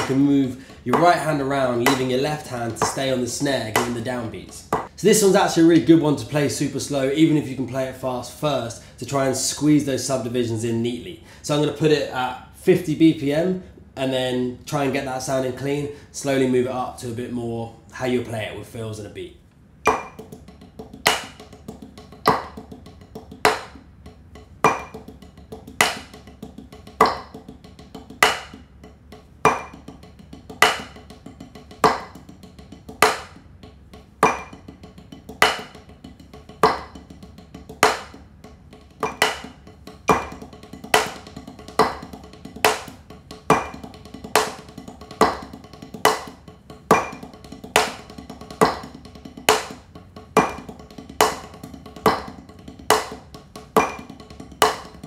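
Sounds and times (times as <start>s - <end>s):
drumsticks on practice pad: 0.0s - 6.0s, 19.8s - 55.0s.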